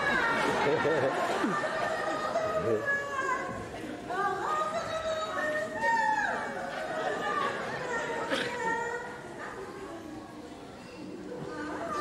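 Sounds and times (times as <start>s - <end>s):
chatter in a hall: 0.0s - 12.0s.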